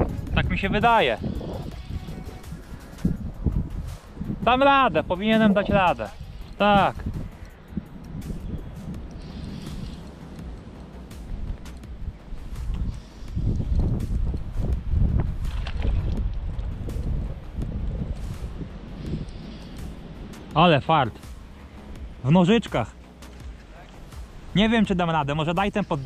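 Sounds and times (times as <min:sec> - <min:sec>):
low rumbling wind: 0:00.0 - 0:26.0
microphone handling noise: 0:12.6 - 0:19.4.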